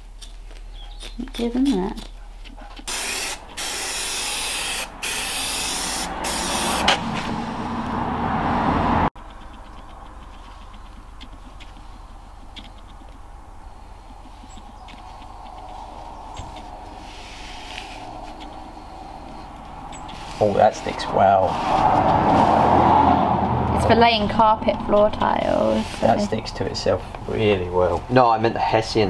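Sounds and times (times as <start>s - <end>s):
aerosol spray hissing: 2.9s - 6.9s.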